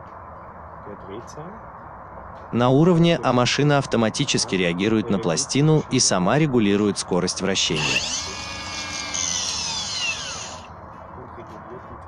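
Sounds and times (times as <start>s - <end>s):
power tool motor spinning down: 7.7s - 10.7s.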